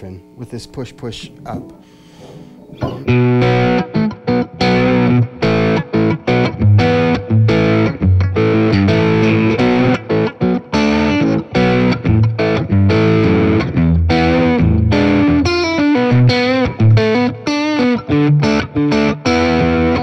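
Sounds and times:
overdriven electric guitar lead: 1.6 - 20.0.

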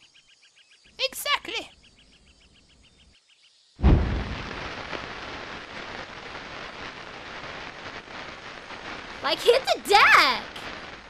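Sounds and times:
firework bang: 3.8 - 11.0
fireworks crackling and hissing: 3.8 - 11.0.

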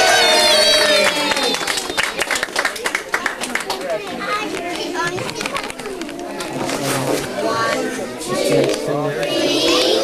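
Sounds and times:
young children chattering: 0.0 - 10.0.

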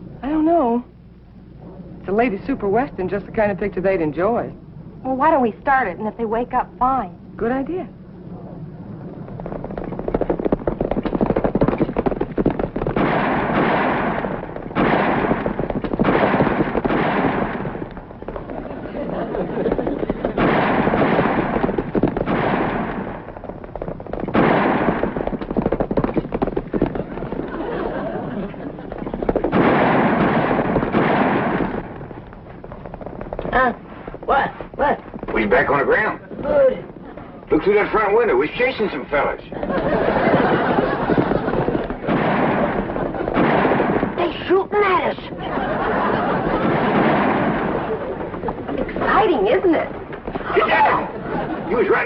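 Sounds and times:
galloping horses: 8.9 - 44.2, 45.3 - 52.0
gunshots: 9.3 - 36.4, 37.5 - 52.0.

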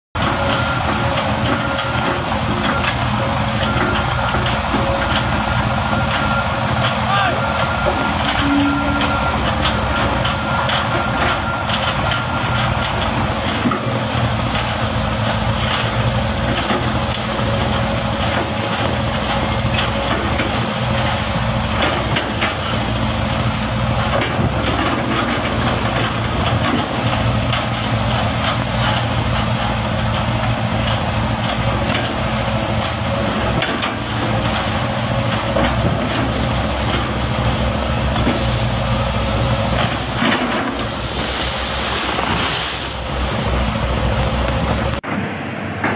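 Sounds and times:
excavator diesel engine running: 0.1 - 45.9.

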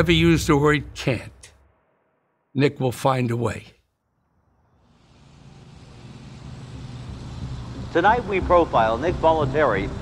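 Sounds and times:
low hum: 4.2 - 10.0.

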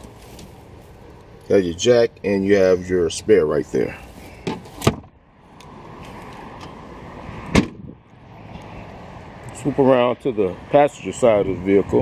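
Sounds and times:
car trunk lid slamming: 4.4 - 5.1, 7.5 - 7.9.

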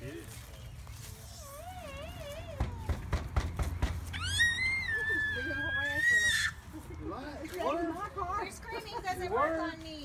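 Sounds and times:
sharp knocks: 2.6 - 4.0
toddler screaming: 4.1 - 6.6.

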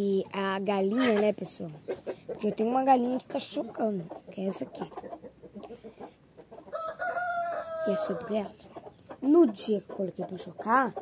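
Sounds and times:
rooster crowing: 6.7 - 8.4.

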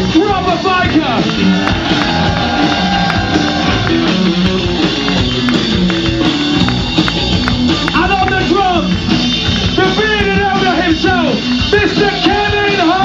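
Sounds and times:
rock band playing guitars and drums: 0.0 - 13.0.

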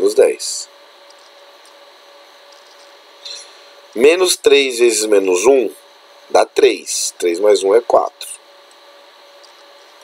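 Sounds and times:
faint electrical hum and whine: 0.0 - 10.0.

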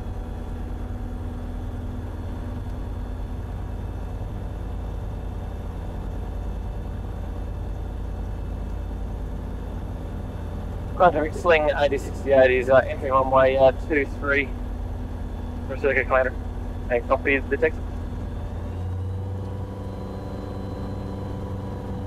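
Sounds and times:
light aircraft engine droning: 0.0 - 22.0.

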